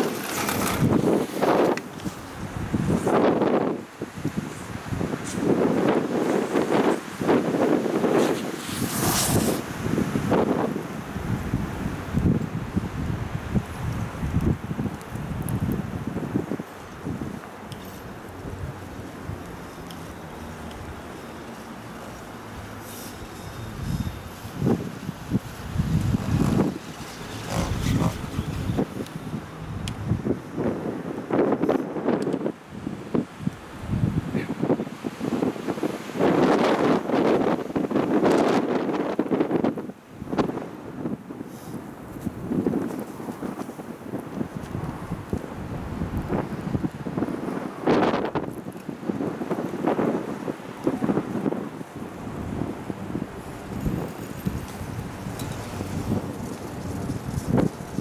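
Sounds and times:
wind buffeting microphone: 0:00.0 - 0:21.2, 0:22.3 - 0:58.0.

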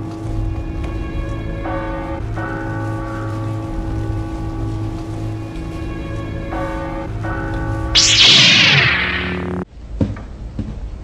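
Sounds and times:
church bells ringing: 0:00.0 - 0:07.9.

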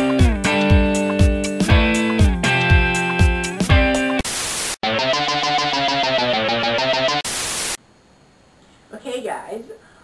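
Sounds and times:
rock guitar music: 0:00.0 - 0:04.2, 0:04.8 - 0:07.3
white-noise static burst: 0:04.2 - 0:04.8, 0:07.1 - 0:07.8.

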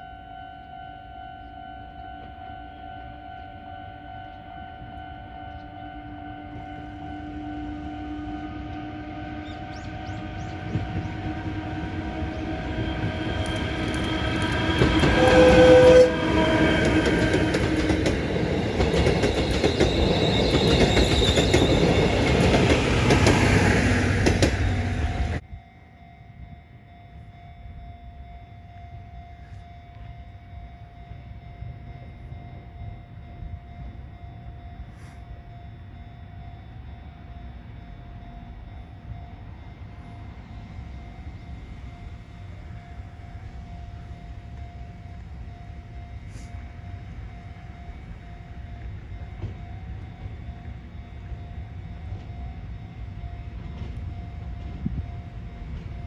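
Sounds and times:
train horn toot: 0:00.0 - 0:25.4, 0:46.0 - 0:47.1
electric locomotive passing: 0:00.0 - 0:56.0
level crossing alarm ringing: 0:00.0 - 0:56.0.

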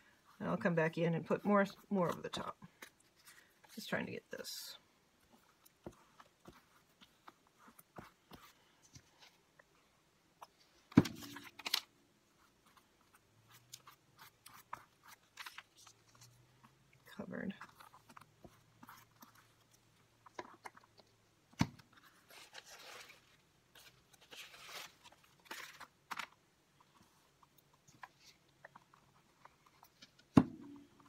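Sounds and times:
paper rustling and tearing: 0:22.0 - 0:26.3.

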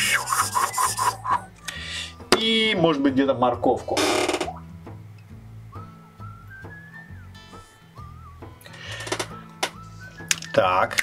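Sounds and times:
marker scratching on paper: 0:00.0 - 0:01.4
background music: 0:00.0 - 0:11.0.

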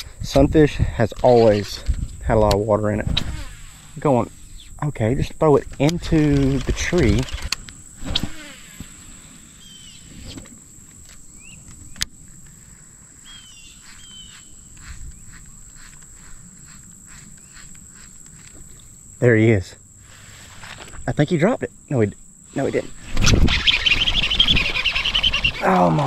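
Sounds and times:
insects droning: 0:00.0 - 0:26.0
bird chirps: 0:09.6 - 0:10.4, 0:13.2 - 0:18.9, 0:23.6 - 0:25.8.

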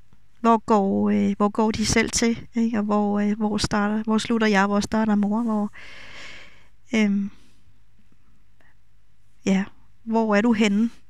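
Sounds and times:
faint low background noise: 0:00.0 - 0:11.0
woman speaking: 0:00.4 - 0:05.9, 0:06.9 - 0:07.4, 0:09.4 - 0:11.0.

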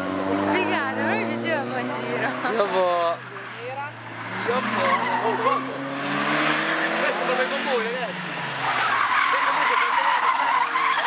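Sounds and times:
tyres skidding on asphalt: 0:00.0 - 0:11.0.

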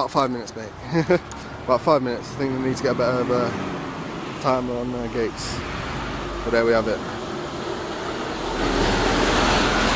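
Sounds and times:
steady outdoor rushing noise: 0:00.0 - 0:09.9.

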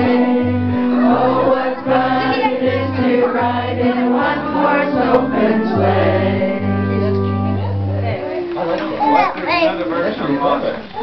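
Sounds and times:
held organ chord: 0:00.0 - 0:08.0.

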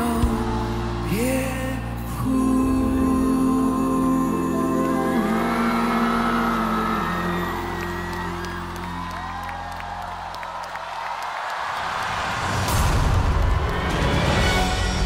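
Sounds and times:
audience cheering and whooping: 0:00.0 - 0:02.2, 0:04.8 - 0:14.5
applause: 0:05.6 - 0:14.9.

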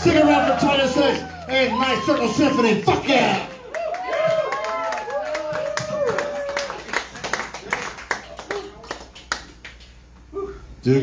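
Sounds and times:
audience clapping: 0:00.0 - 0:10.0.

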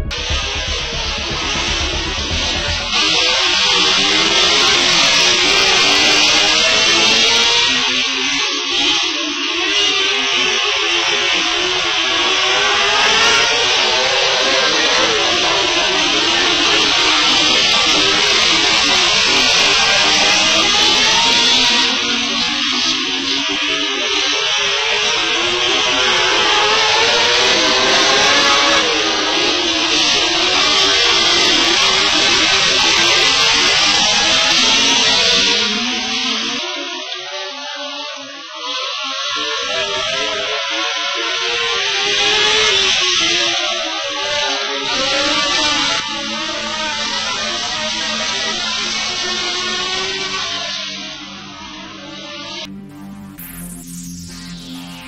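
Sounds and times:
guitar music: 0:00.0 - 0:03.9, 0:50.5 - 0:55.0
race car engines: 0:00.0 - 0:52.7.

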